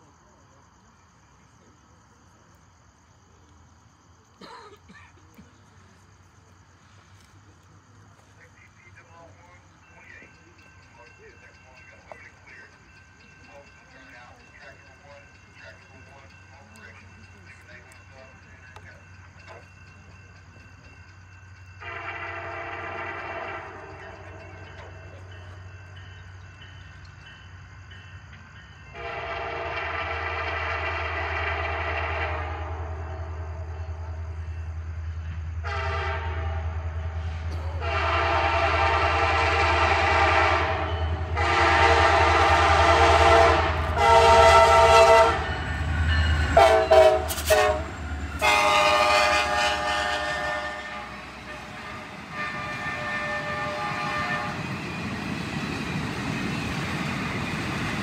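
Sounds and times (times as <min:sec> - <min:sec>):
locomotive rumble: 0:02.6 - 0:58.0
train air horn blasts: 0:21.8 - 0:24.1, 0:28.9 - 0:33.1, 0:35.6 - 0:54.8.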